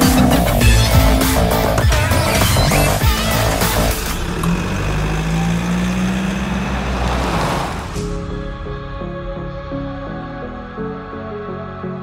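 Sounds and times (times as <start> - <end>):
vehicle engine rising in pitch: 1.6 - 8.6
broad rushing noise: 6.4 - 8.2.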